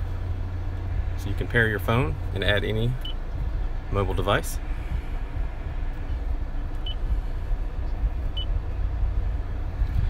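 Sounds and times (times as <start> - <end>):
low rumble inside car cabin: 0.0 - 10.0.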